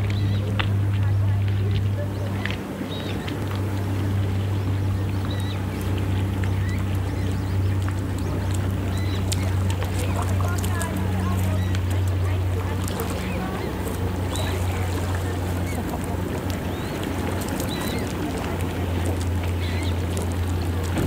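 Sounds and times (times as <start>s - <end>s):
boat engine drone: 0.0s - 21.0s
water-bird calls chirping: 0.0s - 21.0s
waves lapping on pebbles: 0.0s - 21.0s.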